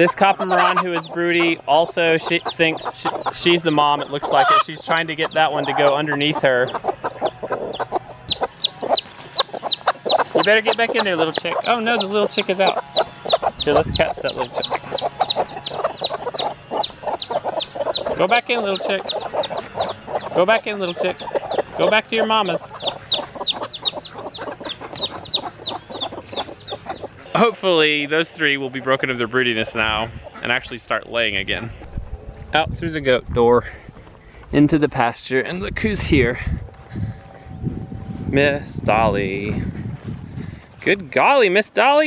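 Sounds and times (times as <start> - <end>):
chick peeping: 0.0 - 32.6, 35.5 - 40.7
hens clucking: 0.0 - 32.7, 33.9 - 42.0.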